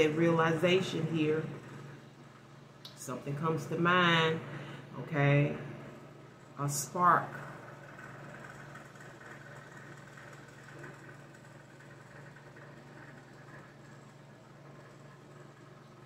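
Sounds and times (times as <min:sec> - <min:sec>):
faint steady low hum: 0:00.0 - 0:16.0.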